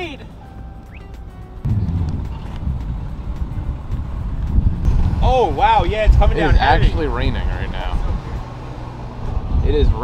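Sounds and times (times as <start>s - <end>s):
wind buffeting microphone: 1.6s - 10.0s.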